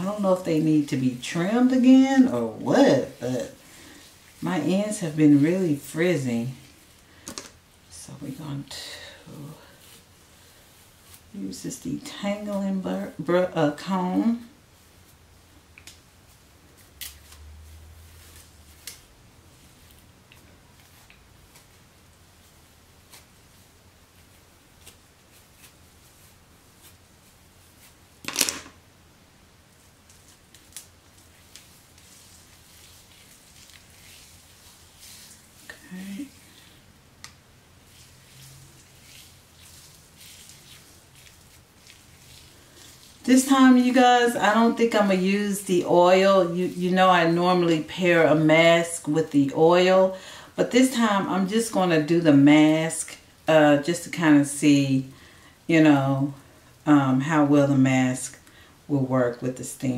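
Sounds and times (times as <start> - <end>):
brush scratching through hair: 0.0 - 7.0, 7.9 - 15.3, 16.2 - 28.2, 29.7 - 36.9, 37.7 - 54.8.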